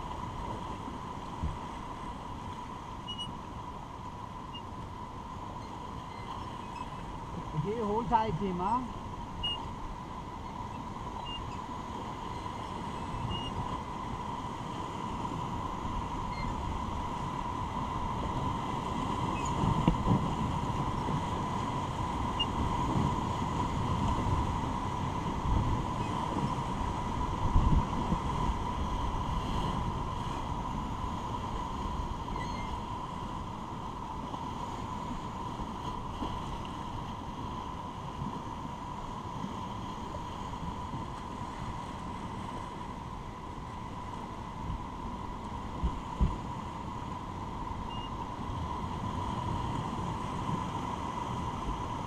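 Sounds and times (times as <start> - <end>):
rushing river whitewater: 0.0 - 52.0
wind on microphone: 0.0 - 52.0.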